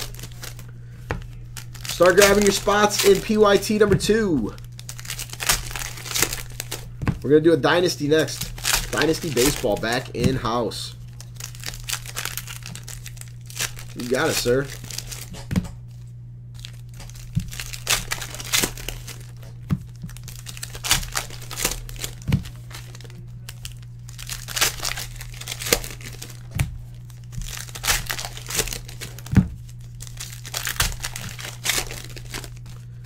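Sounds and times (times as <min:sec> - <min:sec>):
foil wrappers crinkling and tearing: 0:00.0 - 0:33.0
steady low hum: 0:00.0 - 0:33.0.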